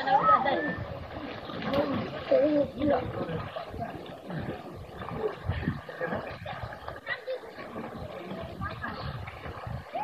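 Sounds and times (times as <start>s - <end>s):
swimmers splashing water: 0.0s - 10.0s.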